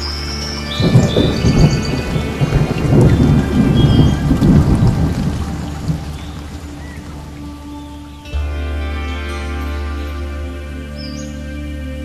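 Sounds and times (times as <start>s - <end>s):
thunder rumbling: 0.0s - 8.3s
rain hissing: 0.0s - 12.0s.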